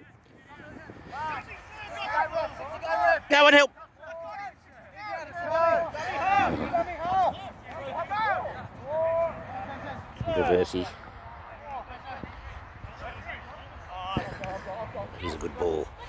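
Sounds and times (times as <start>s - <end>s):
open-air background noise: 0.0s - 16.0s
people shouting calls: 1.1s - 10.4s.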